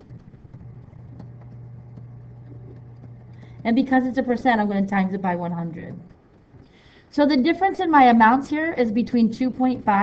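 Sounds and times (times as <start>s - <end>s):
faint clicks: 0.0s - 3.7s
low hum: 0.0s - 10.0s.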